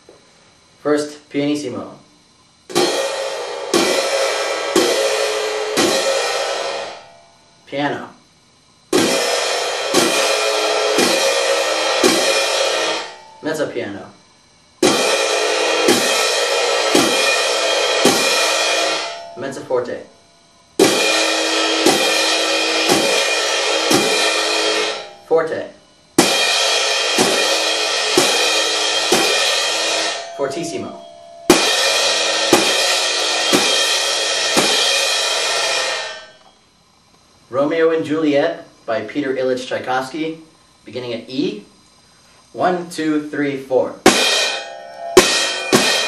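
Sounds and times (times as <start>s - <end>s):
soft crash cymbals ringing: 2.7s - 37.0s, 43.7s - 46.0s.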